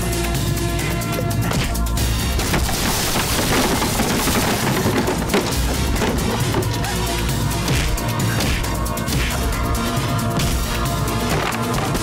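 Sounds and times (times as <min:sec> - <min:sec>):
dramatic background music: 0:00.0 - 0:12.0
splintering wood crash: 0:02.3 - 0:06.9.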